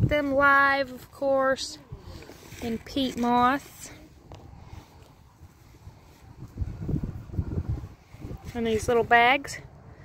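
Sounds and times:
wind buffeting microphone: 0.0s - 0.4s, 3.3s - 10.0s.

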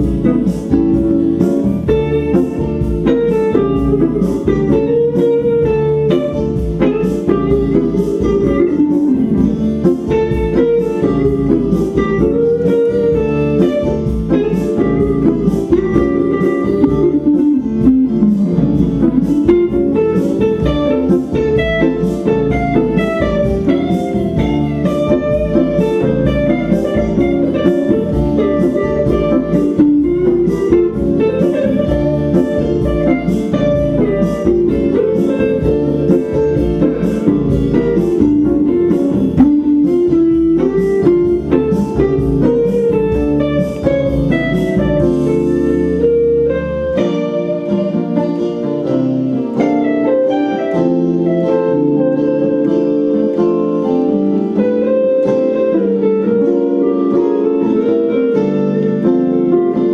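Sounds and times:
electric guitar lead melody: 0.0s - 59.9s
keyboard chords: 0.0s - 59.9s
strummed guitar chords: 0.0s - 59.9s.

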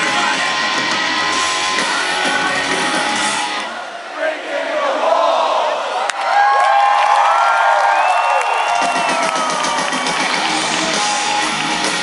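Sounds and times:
rock band bass and drums: 0.0s - 3.7s, 9.4s - 12.0s
crowd cheering and whooping: 5.9s - 12.0s.

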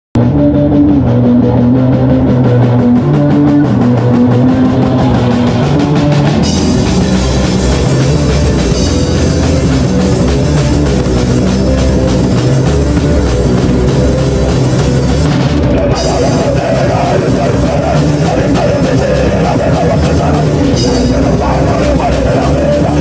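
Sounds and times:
bass guitar: 0.1s - 23.0s
distorted electric guitar: 0.2s - 23.0s
drum kit with crashing cymbals: 3.2s - 23.0s.

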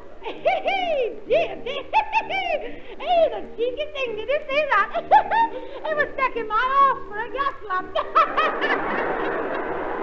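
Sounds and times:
audience laughing: 7.9s - 10.0s.

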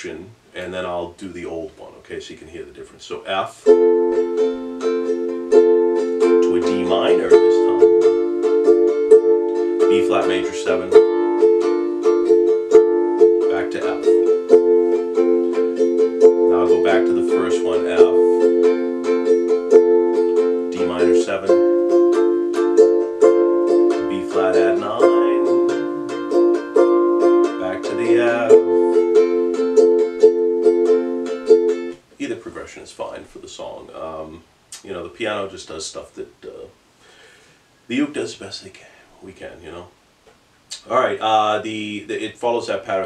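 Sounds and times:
ukulele strumming chords: 3.5s - 32.1s.

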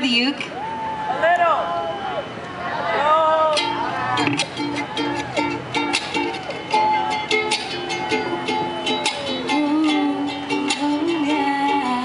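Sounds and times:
ukulele strumming: 3.5s - 12.0s
woman singing: 9.0s - 12.0s.

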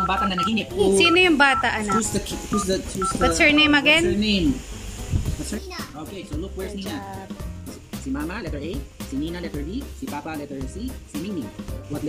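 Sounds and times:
man talking: 0.0s - 1.2s, 1.9s - 4.6s, 5.4s - 12.0s
short beeps: 0.0s - 3.7s
girl talking: 5.6s - 5.9s.

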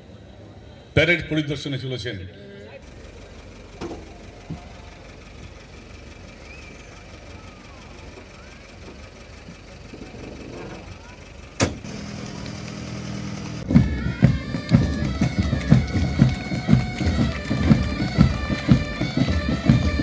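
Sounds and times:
engine running at low revs: 2.6s - 20.0s.

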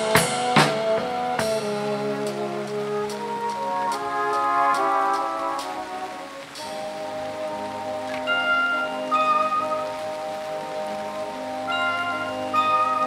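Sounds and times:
brass band sustained chords: 0.0s - 13.0s
rain: 0.0s - 13.0s.

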